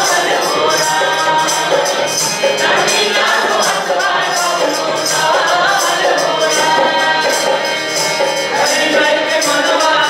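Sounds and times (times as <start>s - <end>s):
barrel drum beat: 0.0s - 10.0s
jingling percussion: 0.0s - 10.0s
person singing folk song: 8.4s - 10.0s.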